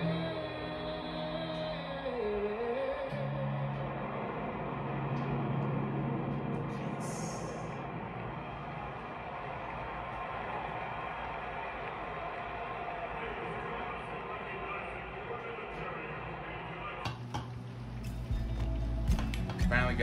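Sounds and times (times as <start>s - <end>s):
jets roaring overhead: 2.2s - 17.0s.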